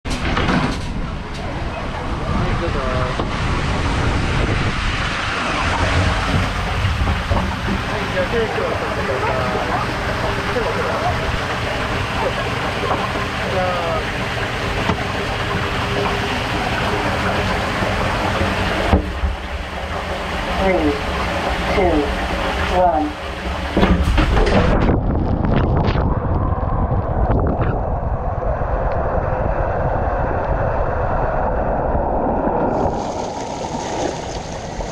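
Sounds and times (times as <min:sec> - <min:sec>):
steady rushing water: 0:01.2 - 0:34.9.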